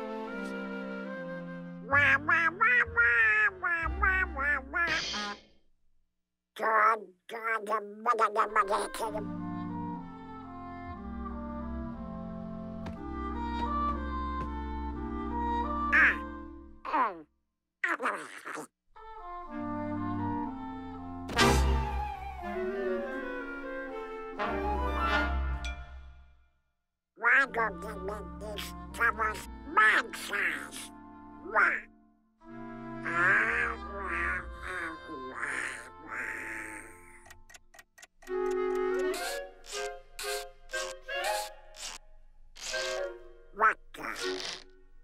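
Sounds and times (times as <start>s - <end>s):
orchestra brass and woodwind chords: 0.0s - 2.3s, 19.4s - 25.8s
raspy cartoon voice chuckling: 1.9s - 5.1s, 33.0s - 37.1s
cartoon duck quacking voice: 1.9s - 5.4s, 6.6s - 9.3s, 15.9s - 16.3s, 16.9s - 17.2s, 17.8s - 18.7s, 27.2s - 31.9s, 33.0s - 37.4s, 38.8s - 42.0s, 42.6s - 44.6s
sharp ticks: 37.1s - 42.0s.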